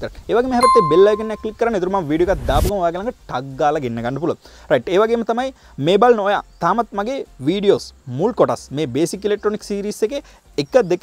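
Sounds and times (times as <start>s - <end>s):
electronic bell ding: 0.6s - 1.7s.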